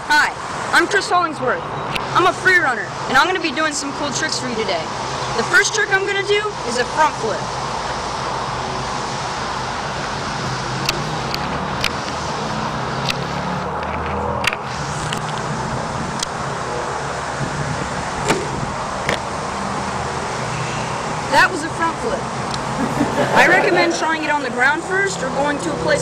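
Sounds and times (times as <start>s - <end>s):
road traffic noise: 0.0s - 26.0s.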